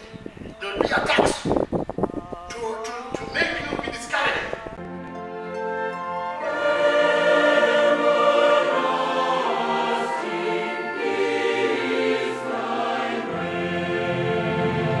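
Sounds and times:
choir singing sustained chords: 4.4s - 15.0s.

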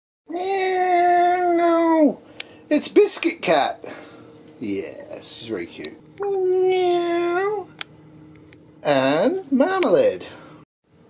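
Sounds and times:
cat meowing: 6.2s - 7.7s.

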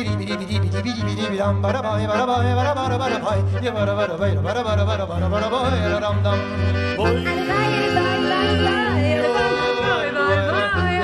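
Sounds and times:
accordion: 0.0s - 11.0s
double bass low notes: 0.0s - 11.0s
sliding bending melody: 6.7s - 10.4s.

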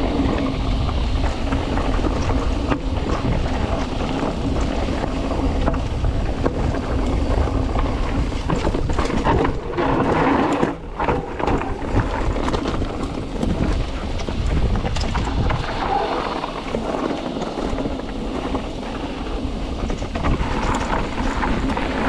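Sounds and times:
bike knocks and rattles: 0.0s - 22.0s
tyres rumbling on dirt: 0.0s - 22.0s
wind buffeting microphone: 0.0s - 22.0s.

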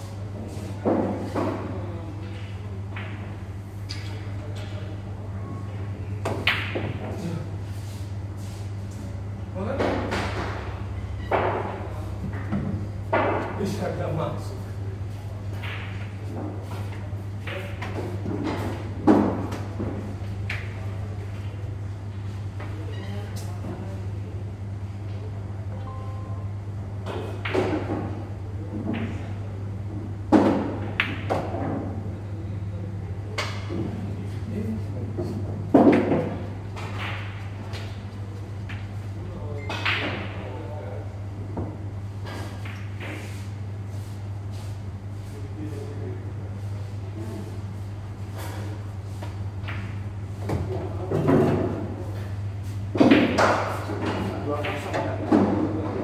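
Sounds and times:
low hum: 25.7s - 26.9s.

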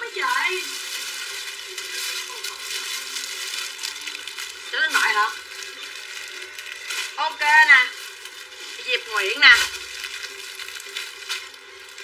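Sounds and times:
plastic packaging rustling: 0.0s - 12.0s.

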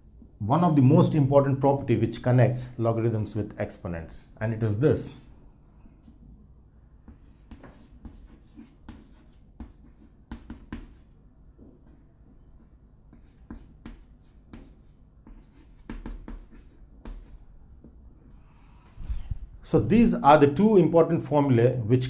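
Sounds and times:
chalk scratching on chalkboard: 7.1s - 11.1s, 13.1s - 17.4s.

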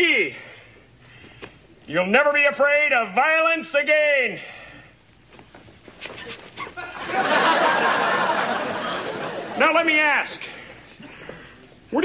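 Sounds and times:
studio audience laughing: 6.6s - 9.8s.

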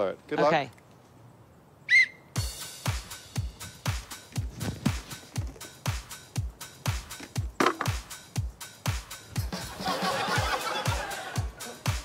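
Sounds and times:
thumping kick drum: 2.4s - 8.5s
electronic dance music: 5.8s - 12.0s.

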